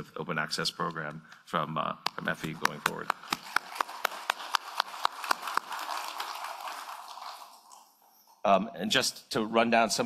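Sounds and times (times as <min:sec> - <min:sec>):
close hand clapping: 0:02.0 - 0:07.6
audience applause: 0:02.5 - 0:07.8.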